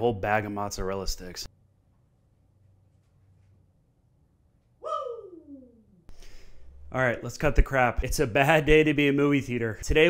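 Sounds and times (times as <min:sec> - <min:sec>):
hoot sliding down in pitch: 0:04.8 - 0:06.1.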